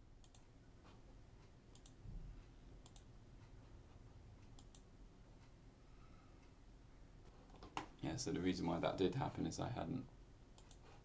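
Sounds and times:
faint room hum: 0:00.0 - 0:11.0
computer mouse clicks: 0:00.2 - 0:00.5, 0:01.7 - 0:02.0, 0:02.8 - 0:03.1, 0:04.4 - 0:04.9, 0:10.6 - 0:11.0.

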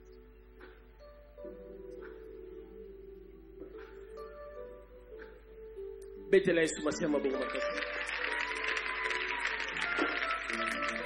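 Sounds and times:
background music with held notes: 0:00.0 - 0:11.0
congregation applauding: 0:06.8 - 0:11.0.

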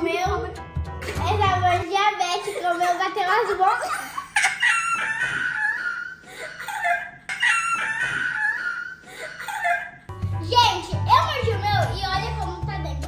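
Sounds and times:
girls shrieking with laughter: 0:03.8 - 0:10.0.

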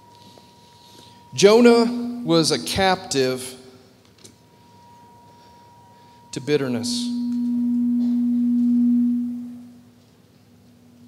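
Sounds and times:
microphone feedback tone: 0:01.3 - 0:02.6, 0:04.7 - 0:10.0.

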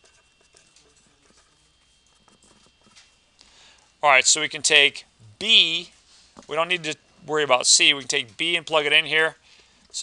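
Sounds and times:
felt-tip marker scratching on paper: 0:00.0 - 0:03.1.

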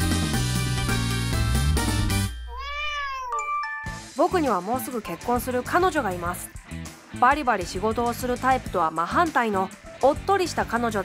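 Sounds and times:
cat meowing: 0:02.5 - 0:03.5.

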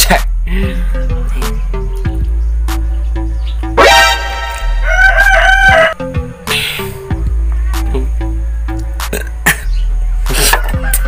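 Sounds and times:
background music: 0:00.0 - 0:11.0
rooster crowing: 0:03.8 - 0:06.2, 0:10.6 - 0:11.0.

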